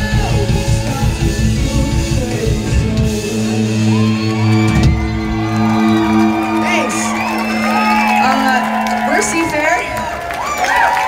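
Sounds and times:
audience whooping and cheering: 0:03.4 - 0:11.0.

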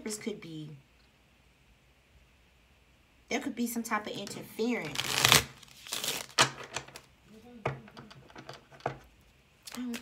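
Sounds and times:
cards being shuffled: 0:04.2 - 0:07.1.

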